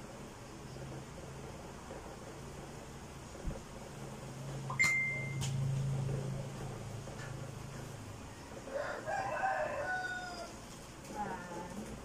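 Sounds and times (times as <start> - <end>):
rooster crowing: 8.6 - 10.6.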